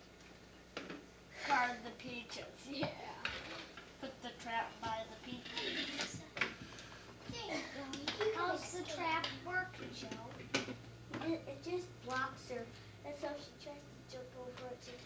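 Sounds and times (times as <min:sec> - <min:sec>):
low steady hum: 0:00.0 - 0:15.0
children talking: 0:01.4 - 0:15.0.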